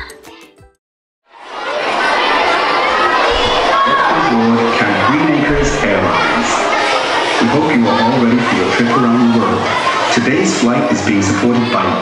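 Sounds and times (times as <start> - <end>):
children shouting and cheering: 0.0 - 0.6, 1.3 - 12.0.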